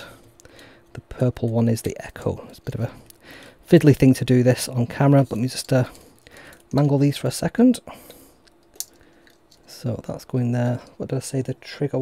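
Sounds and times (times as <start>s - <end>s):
handling wire connectors: 5.2s - 6.8s, 8.4s - 9.7s.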